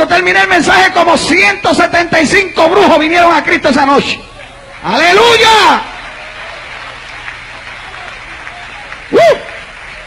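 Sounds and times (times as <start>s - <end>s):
congregation applauding: 3.1s - 10.0s
man shouting: 4.9s - 5.8s, 9.1s - 9.5s.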